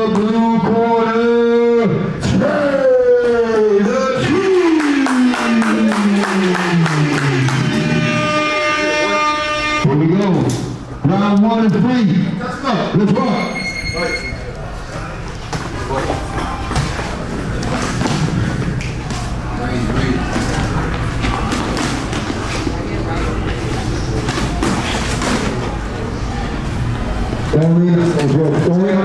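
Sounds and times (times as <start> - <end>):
short high tone: 13.2 - 14.5.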